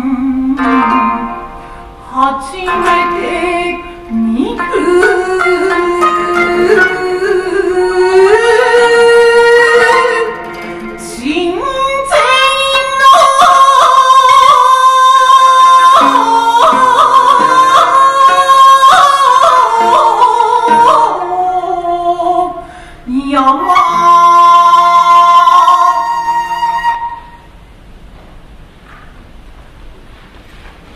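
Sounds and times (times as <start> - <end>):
woman chanting: 2.1 - 27.2.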